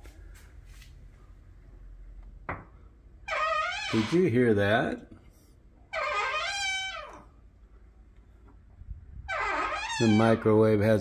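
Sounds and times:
microwave door squeal: 9.3s - 10.4s.

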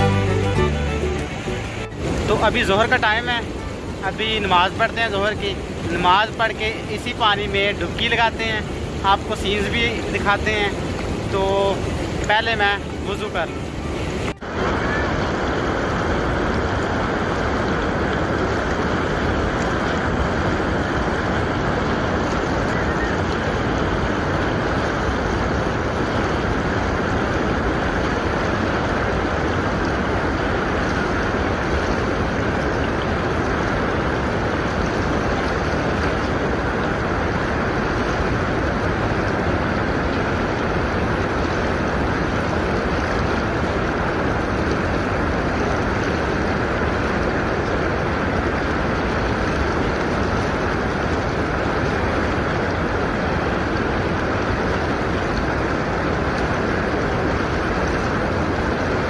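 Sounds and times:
water rushing: 0.0s - 59.0s.

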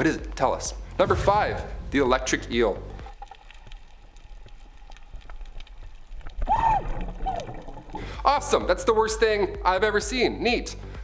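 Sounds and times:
faint clicks underwater: 2.9s - 8.2s
muffled underwater rumble: 3.0s - 8.2s.

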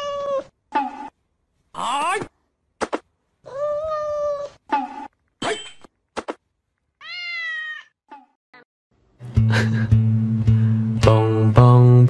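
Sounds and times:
kitten meowing: 7.0s - 8.0s.

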